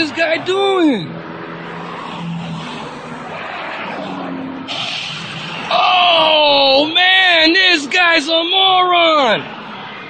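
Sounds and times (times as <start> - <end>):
tyre road noise: 0.0 - 10.0.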